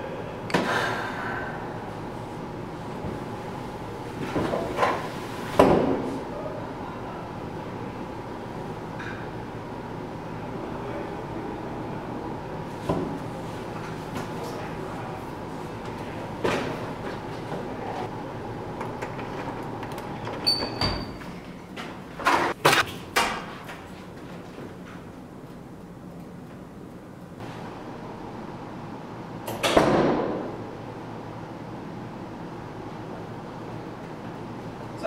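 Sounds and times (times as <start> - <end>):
steady background hum: 0.0 - 35.0.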